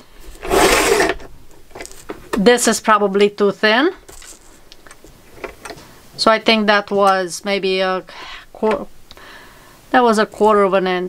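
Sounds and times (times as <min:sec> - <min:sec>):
cardstock sliding rustle: 0:00.3 - 0:02.1.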